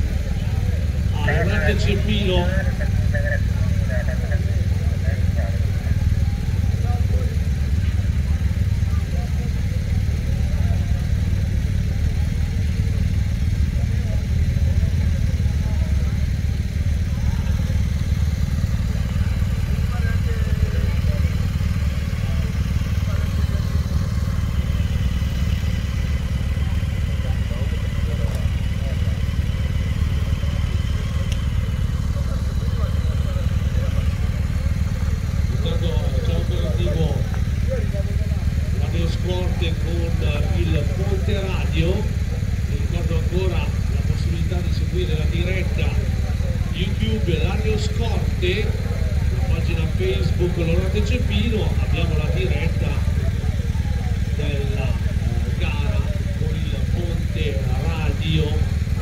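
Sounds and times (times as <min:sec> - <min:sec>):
faint voices: 0:00.0 - 0:59.0
motorcycle engine idling: 0:00.0 - 0:59.0.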